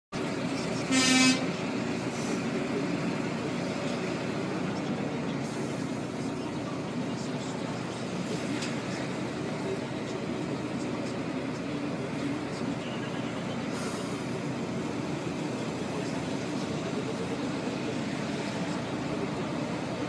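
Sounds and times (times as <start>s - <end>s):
traffic rumble: 0.1s - 20.0s
vehicle horn blast: 0.8s - 1.6s.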